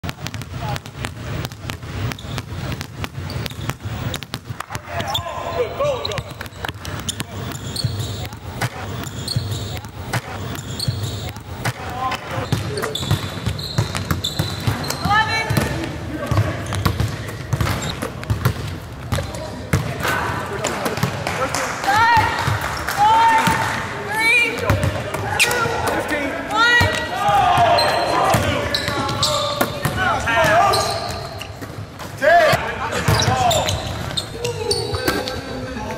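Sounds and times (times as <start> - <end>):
shoe squeaks: 2.0 - 15.7, 16.4 - 18.4, 25.4 - 25.8, 27.6 - 31.8, 32.9 - 35.6
basketball bouncing on hardwood: 12.5 - 19.9.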